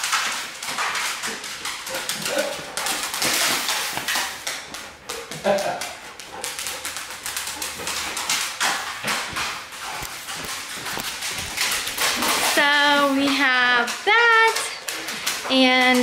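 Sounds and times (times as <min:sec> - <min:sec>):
dog making excited noises: 0:00.2 - 0:16.0
clicks and knocks of movement: 0:06.4 - 0:16.0
voices: 0:12.4 - 0:14.8, 0:15.4 - 0:16.0.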